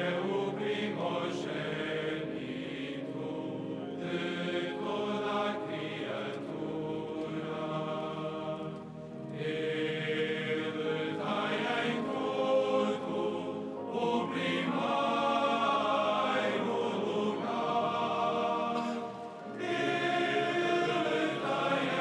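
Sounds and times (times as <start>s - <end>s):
choir chanting: 0.0s - 22.0s.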